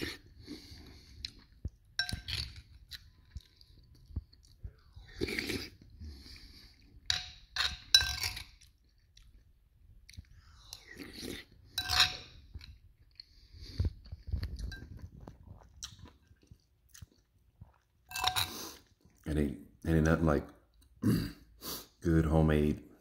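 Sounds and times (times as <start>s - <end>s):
chewing: 0.0s - 19.3s
spoon clinking in ceramic bowl: 2.0s - 2.5s, 7.1s - 8.5s, 11.8s - 12.3s.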